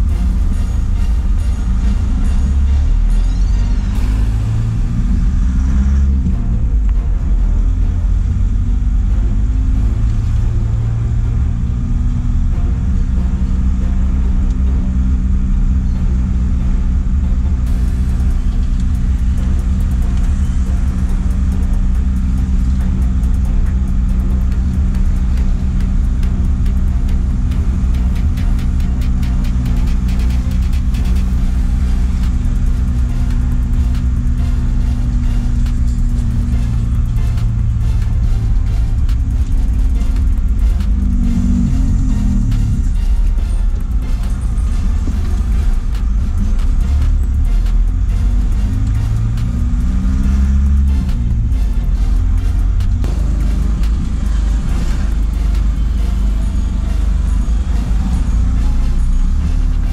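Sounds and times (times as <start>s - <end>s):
truck engine from inside cab: 0.0s - 59.9s.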